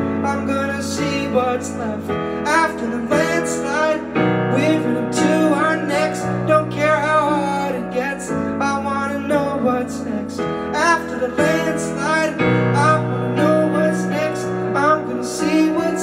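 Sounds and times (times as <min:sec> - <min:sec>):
man singing: 0:00.0 - 0:16.0
piano chords: 0:00.0 - 0:16.0.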